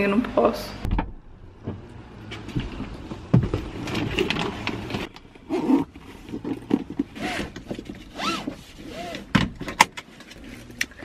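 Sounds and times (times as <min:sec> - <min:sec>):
rummaging in handbag rustles: 0:03.6 - 0:09.0.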